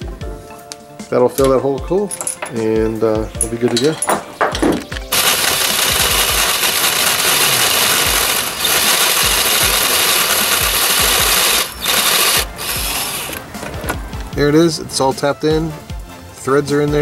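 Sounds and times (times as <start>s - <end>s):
power drill cutting metal: 5.1s - 13.4s.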